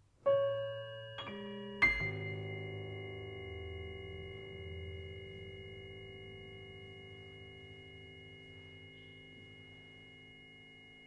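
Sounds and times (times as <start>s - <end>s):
piano chord ringing: 0.2s - 11.0s.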